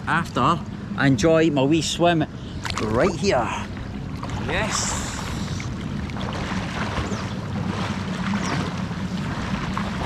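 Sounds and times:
pool water lapping and sloshing: 0:01.2 - 0:10.0
swimmer splashing: 0:02.6 - 0:10.0.

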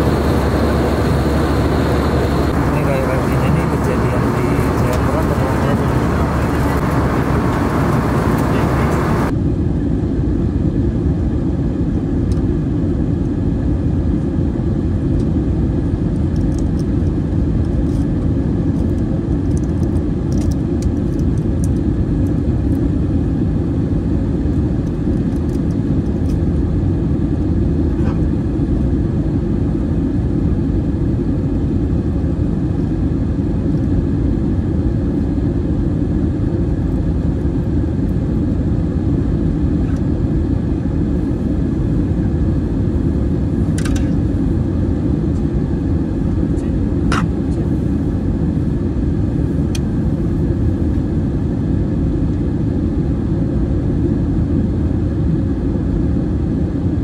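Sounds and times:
aircraft cabin engine rumble: 0:00.0 - 0:57.0.

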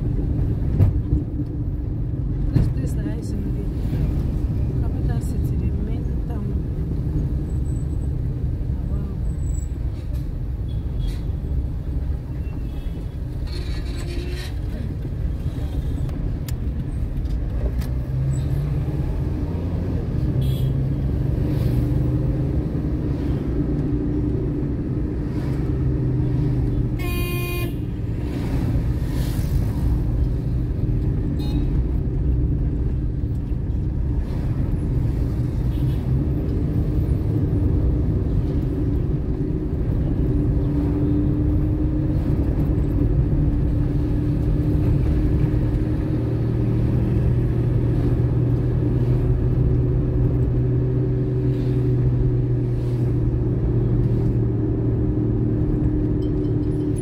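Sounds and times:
car driving in traffic: 0:00.0 - 0:57.0
car horn toot: 0:27.0 - 0:27.9.

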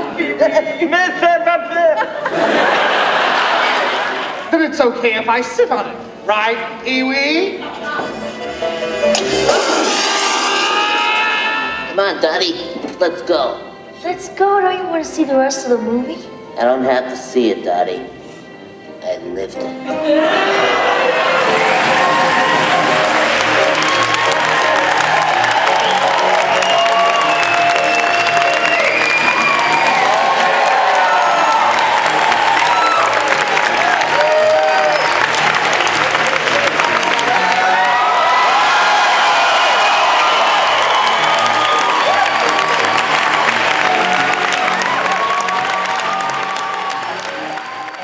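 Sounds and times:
music: 0:00.0 - 0:48.0
audience applauding and cheering: 0:02.2 - 0:04.5, 0:07.9 - 0:12.3, 0:20.2 - 0:48.0.

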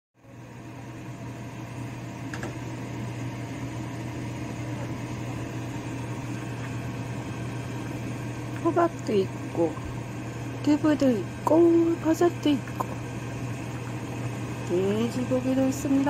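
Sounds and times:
fan or motor humming: 0:00.2 - 0:16.0.

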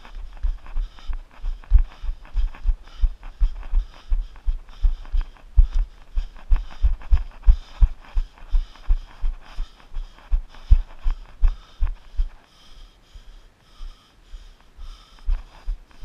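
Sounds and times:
runner breathing hard: 0:00.0 - 0:16.0.

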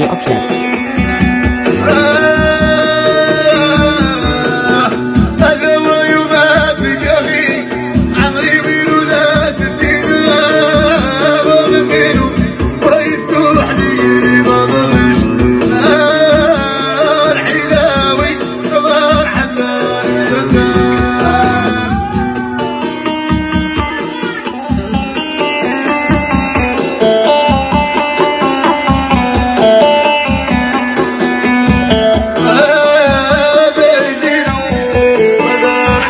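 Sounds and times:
man singing: 0:00.0 - 0:30.8, 0:31.7 - 0:36.0
plucked string accompaniment: 0:00.0 - 0:36.0
steady drum beat: 0:00.0 - 0:36.0.

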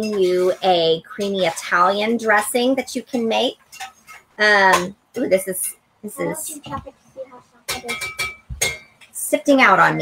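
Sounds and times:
kitchenware clinking: 0:00.0 - 0:06.4, 0:07.7 - 0:10.0.

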